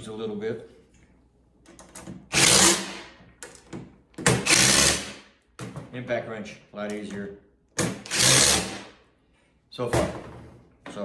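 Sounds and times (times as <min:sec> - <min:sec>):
impact wrench driving bolt: 0:01.8 - 0:05.2, 0:07.8 - 0:08.9.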